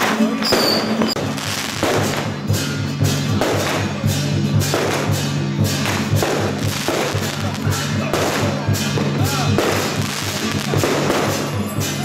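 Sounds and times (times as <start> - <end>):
drum beating steadily: 0.0 - 12.0.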